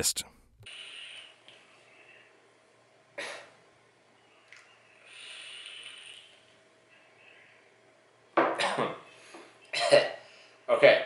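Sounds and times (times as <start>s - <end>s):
vape hiss: 0.6s - 1.6s, 5.0s - 6.6s.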